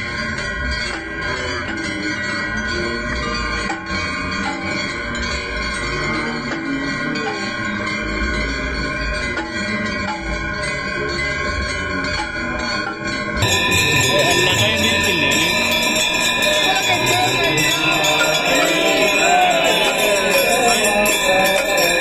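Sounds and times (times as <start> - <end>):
bells ringing: 0.0 - 22.0.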